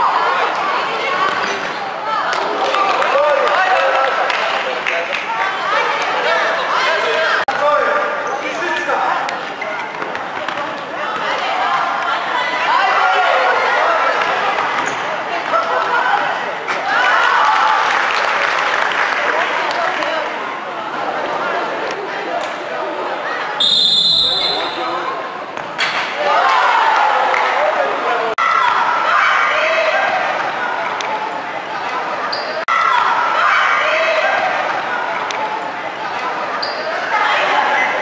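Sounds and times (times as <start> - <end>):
players shouting in echoing hall: 0.0 - 38.0
referee's whistle long blast: 23.6 - 24.9.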